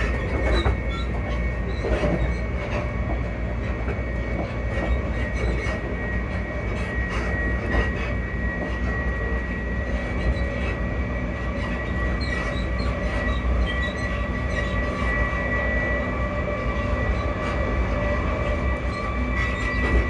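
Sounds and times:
high even whine: 0:00.0 - 0:20.0
train rumbling on rails: 0:00.0 - 0:20.0.

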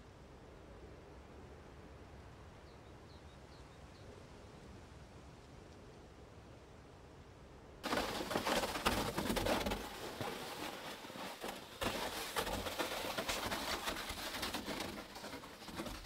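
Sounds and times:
footsteps crunching in snow: 0:07.8 - 0:16.0
plastic sled dragging over snow: 0:07.8 - 0:16.0.

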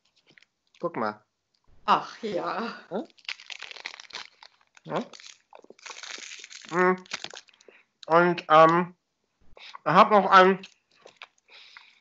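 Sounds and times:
foil wrapper crinkling: 0:00.0 - 0:00.5, 0:03.1 - 0:07.8.

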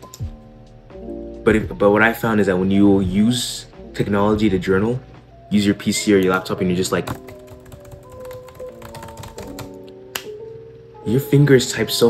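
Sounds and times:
background music with held notes: 0:00.0 - 0:12.0
fast keyboard typing: 0:07.0 - 0:09.8.

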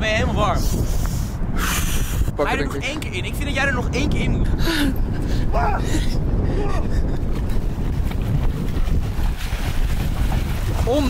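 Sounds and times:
wind buffeting microphone: 0:00.0 - 0:11.0
water splashing: 0:06.7 - 0:11.0.

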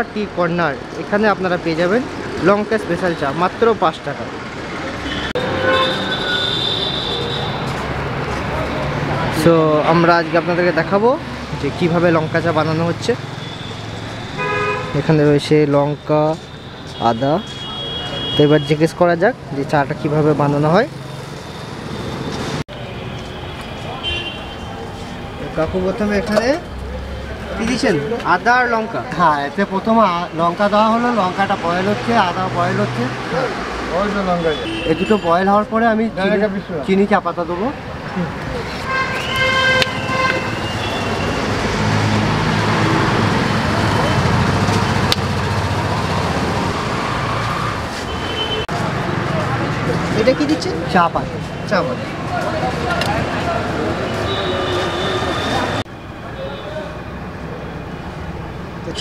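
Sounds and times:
low rumble of road traffic: 0:00.0 - 0:59.0
vehicle horn: 0:05.0 - 0:07.7, 0:13.4 - 0:15.2, 0:16.0 - 0:18.8, 0:23.2 - 0:24.7, 0:34.4 - 0:35.4, 0:38.8 - 0:41.4, 0:48.1 - 0:48.7, 0:54.1 - 0:55.8.

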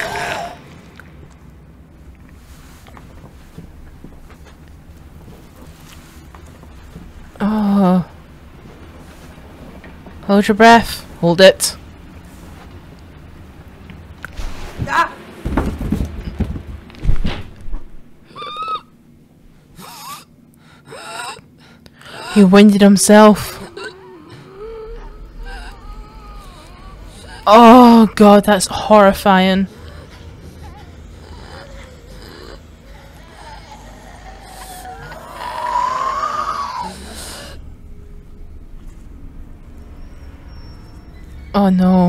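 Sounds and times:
body thudding on floor: 0:15.4 - 0:17.9
high-pitched wailing cry: 0:18.3 - 0:18.9, 0:23.4 - 0:28.1.

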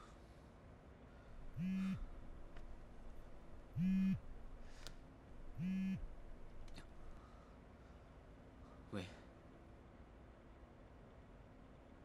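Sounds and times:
phone vibrating on hard surface: 0:01.5 - 0:02.2, 0:03.7 - 0:04.3, 0:05.5 - 0:06.1.

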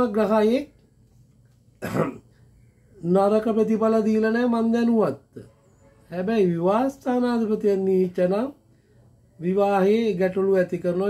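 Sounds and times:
man coughing: 0:01.8 - 0:02.4.

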